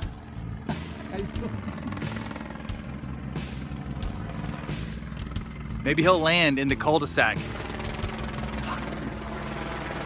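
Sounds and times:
helicopter rotor chop: 0:00.0 - 0:10.0.

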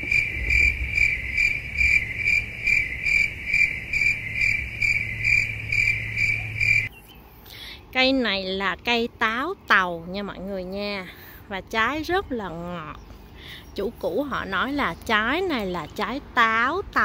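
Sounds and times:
cricket chirping: 0:00.0 - 0:06.9
low hum: 0:00.0 - 0:07.3.

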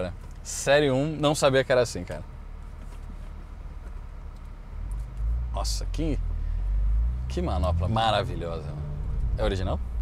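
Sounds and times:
vehicle rumble inside car: 0:00.0 - 0:10.0.

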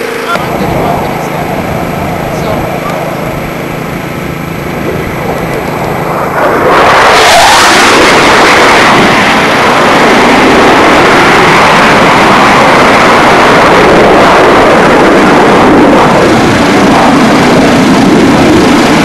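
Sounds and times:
jet engines roaring overhead: 0:00.0 - 0:19.0.

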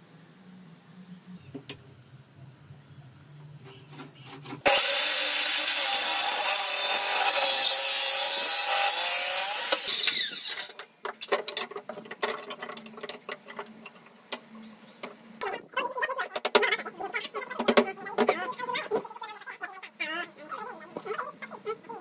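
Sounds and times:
circular saw cutting wood: 0:03.6 - 0:10.8.

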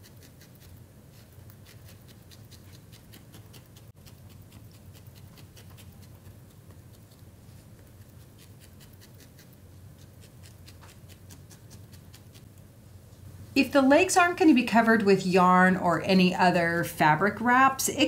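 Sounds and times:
felting needle poking wool: 0:00.0 - 0:12.7.

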